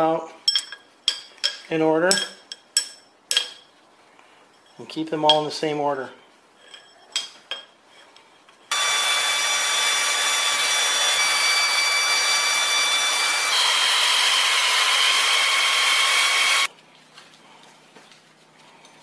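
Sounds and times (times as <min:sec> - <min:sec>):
power tool whirring: 0:08.7 - 0:16.7.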